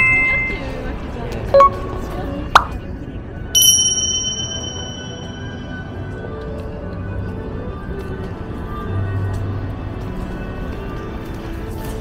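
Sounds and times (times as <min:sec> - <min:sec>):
bright bell ding: 0:00.0 - 0:00.9, 0:03.6 - 0:05.9
murmur of crowded street: 0:00.0 - 0:12.0.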